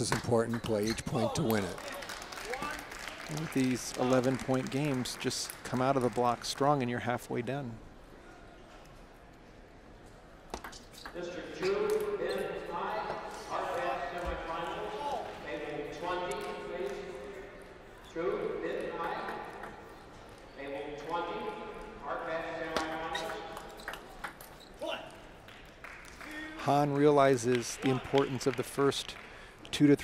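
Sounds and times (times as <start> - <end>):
voices talking in a hall: 0.0 - 30.0.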